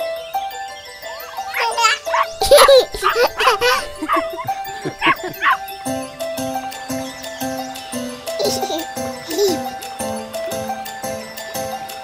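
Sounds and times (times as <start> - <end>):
cheerful cartoon music: 0.0 - 12.0
cartoon puppy barking: 1.2 - 5.6
children's excited voices: 1.2 - 5.6.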